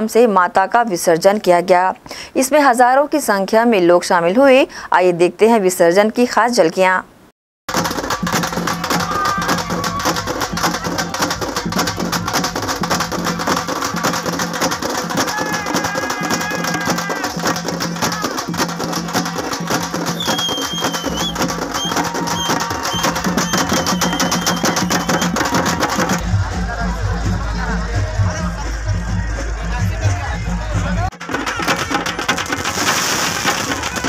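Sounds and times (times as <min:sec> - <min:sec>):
loud fast drumming: 0:07.7 - 0:26.5, 0:30.0 - 0:34.0
street procession band music: 0:07.7 - 0:34.0.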